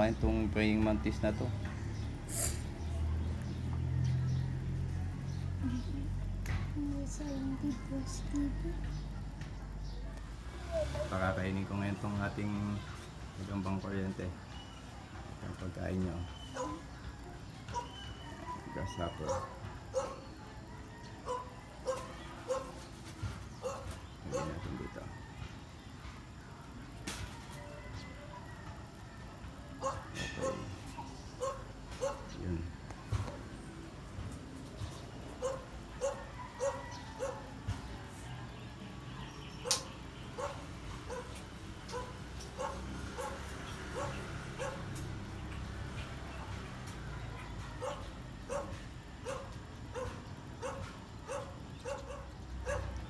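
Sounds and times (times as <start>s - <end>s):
dog barking: 16.5s - 16.8s, 17.7s - 18.0s, 19.1s - 20.3s, 21.2s - 22.8s, 23.6s - 24.7s, 29.8s - 30.7s, 31.4s - 32.4s, 35.4s - 37.6s, 39.6s - 44.9s, 47.3s - 53.0s.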